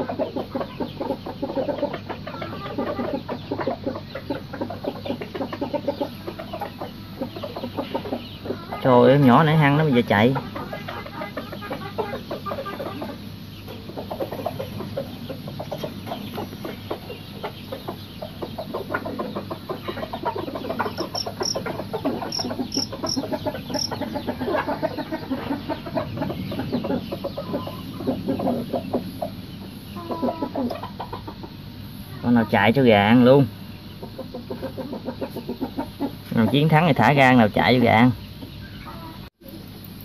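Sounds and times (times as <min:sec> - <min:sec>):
chickens clucking: 0:00.0 - 0:40.0
cricket chirps: 0:11.6 - 0:30.4.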